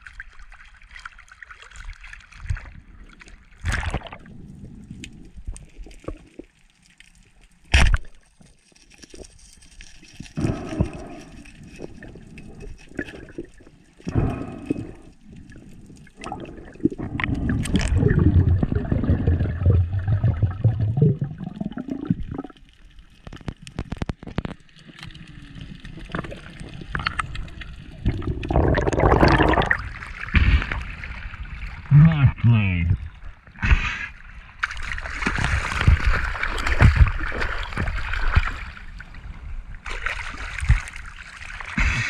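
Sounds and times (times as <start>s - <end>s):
underwater gurgling and bubbling: 10.1s - 42.0s.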